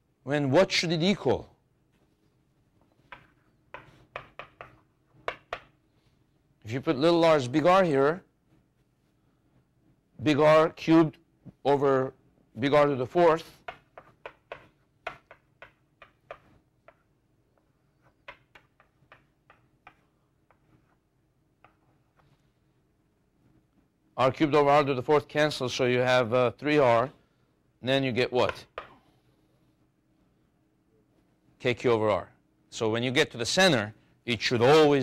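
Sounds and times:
chalk tapping on chalkboard: 3.0 - 5.8, 13.6 - 21.0, 21.6 - 22.0.

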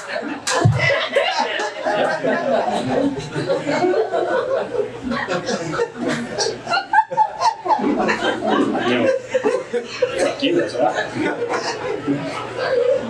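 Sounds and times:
audience laughing: 0.0 - 13.0.

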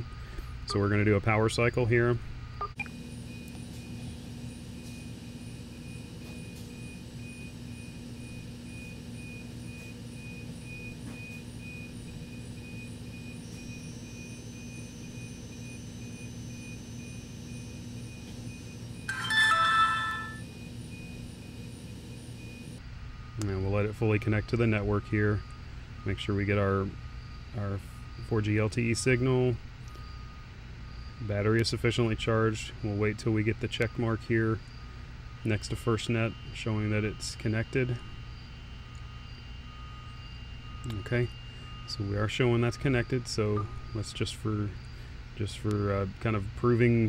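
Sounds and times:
low room hum: 0.0 - 47.0
phone power-on chime: 16.1 - 21.2.

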